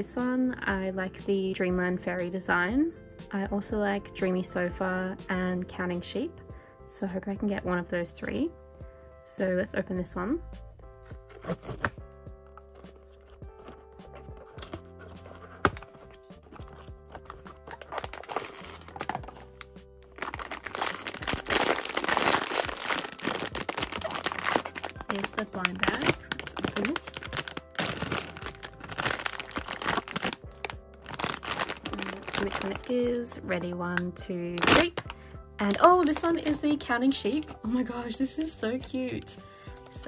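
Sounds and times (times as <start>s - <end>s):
background music: 0.0s - 40.0s
cardboard box handling: 11.0s - 12.0s, 12.6s - 19.4s
plastic bag crinkling: 12.7s - 33.0s, 34.6s - 35.1s, 35.7s - 36.7s.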